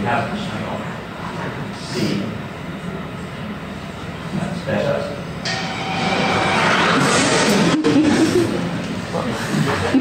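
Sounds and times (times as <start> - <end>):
steady rumbling noise: 0.0 - 10.0.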